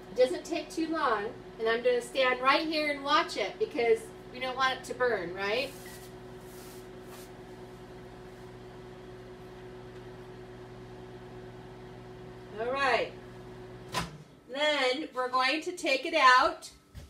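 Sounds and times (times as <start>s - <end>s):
microwave oven humming: 0.0s - 17.0s.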